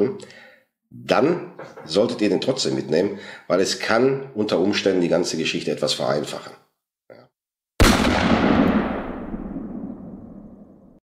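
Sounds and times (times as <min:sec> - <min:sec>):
echoing boom: 0:07.8 - 0:11.0.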